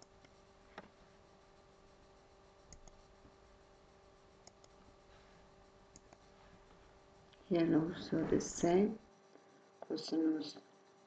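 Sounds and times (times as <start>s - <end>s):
faint steady hum: 0.0s - 11.0s
computer mouse clicks: 2.7s - 3.1s, 4.4s - 4.8s, 5.9s - 6.3s.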